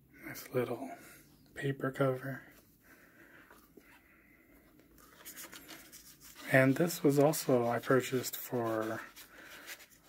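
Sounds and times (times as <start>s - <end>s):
paper sleeve rustling: 5.0s - 10.0s.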